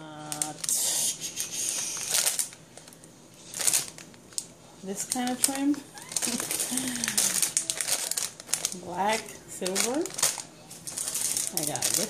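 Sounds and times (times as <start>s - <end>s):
plastic packaging crinkling: 0.2s - 0.8s, 1.7s - 12.0s.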